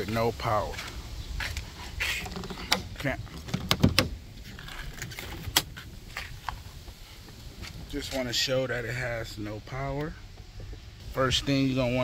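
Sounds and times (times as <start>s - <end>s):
car door pulled open: 2.3s - 5.9s.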